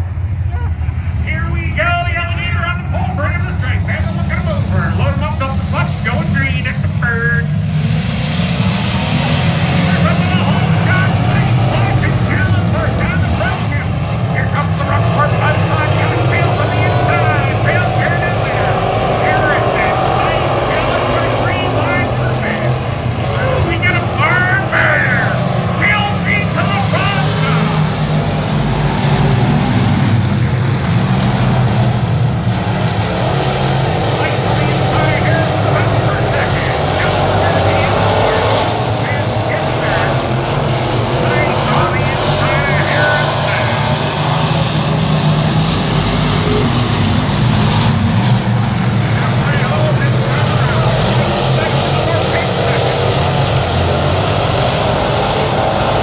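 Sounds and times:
race car engines droning: 0:00.0 - 0:56.0
people talking: 0:00.5 - 0:07.5, 0:09.8 - 0:22.8, 0:23.4 - 0:27.9, 0:34.1 - 0:40.3, 0:41.2 - 0:44.0, 0:46.4 - 0:46.8, 0:49.1 - 0:53.1.

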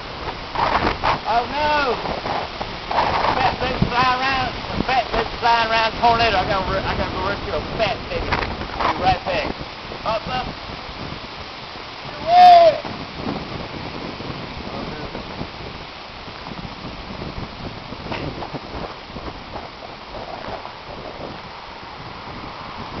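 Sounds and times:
wind on microphone: 0:00.0 - 0:23.0
person whooping: 0:12.1 - 0:12.9.

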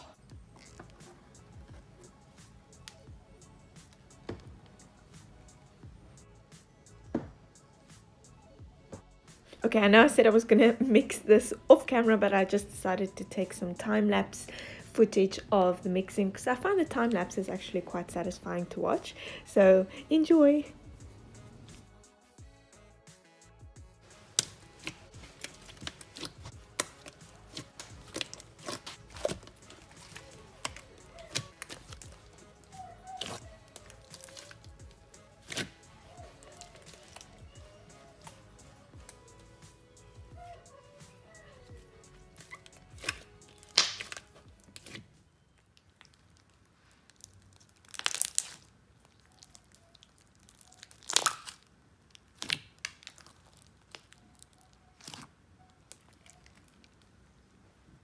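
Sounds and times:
faint music: 0:00.0 - 0:58.0
hands kneading slime: 0:24.2 - 0:39.5, 0:45.8 - 0:57.0.

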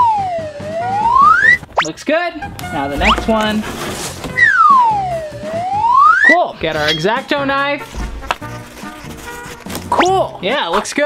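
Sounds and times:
swooping whistle-like tone: 0:00.0 - 0:01.9, 0:04.4 - 0:07.2
background music: 0:00.0 - 0:11.0.

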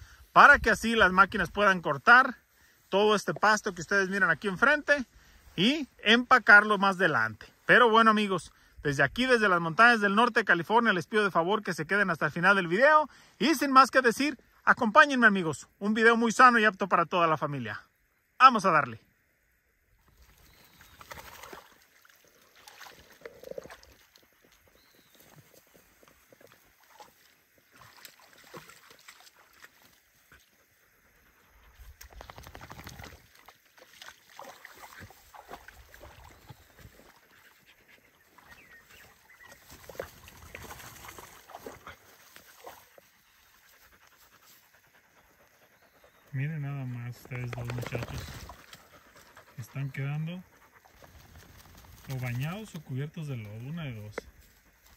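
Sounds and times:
dogs wading in muddy water: 0:20.0 - 0:54.9
dogs panting: 0:35.2 - 0:52.8.

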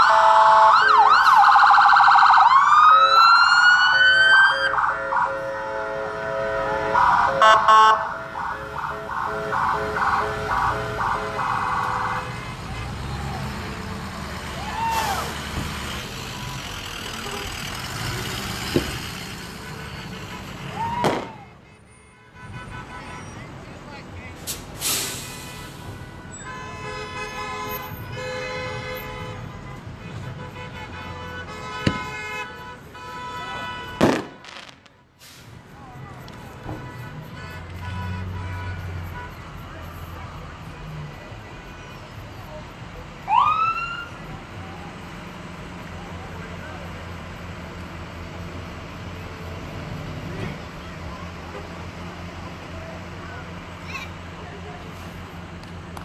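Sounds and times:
blaring vehicle horns: 0:00.0 - 0:01.3, 0:04.3 - 0:13.8, 0:16.2 - 0:24.1, 0:24.8 - 0:35.4, 0:36.4 - 0:42.6
emergency siren pulsing: 0:00.0 - 0:12.2, 0:43.2 - 0:44.3
vehicle sounds: 0:00.0 - 0:56.0
firework bangs: 0:20.9 - 0:21.5, 0:31.8 - 0:32.3, 0:33.9 - 0:35.0
crowd noise: 0:29.6 - 0:56.0.

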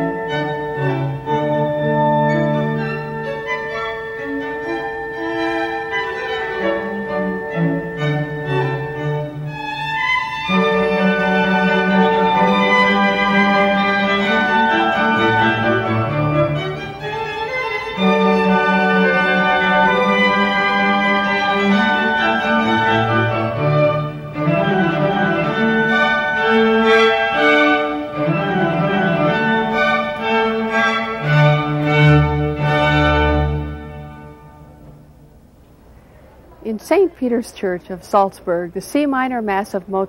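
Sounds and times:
violins and cello playing: 0:00.0 - 0:34.7.

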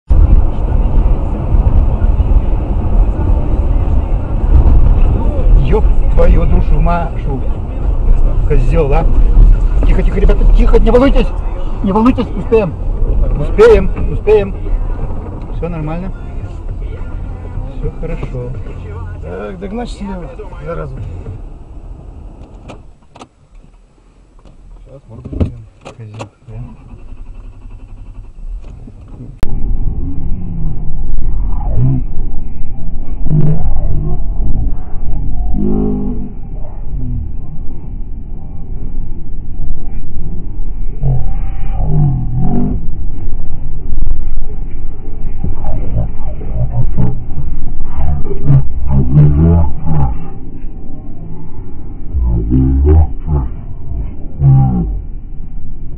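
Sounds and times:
car engine and road drone: 0:00.0 - 0:55.9
loud cabin rumble: 0:00.0 - 0:55.9
low roaring cry: 0:29.5 - 0:38.9, 0:40.3 - 0:43.2, 0:45.3 - 0:55.9.

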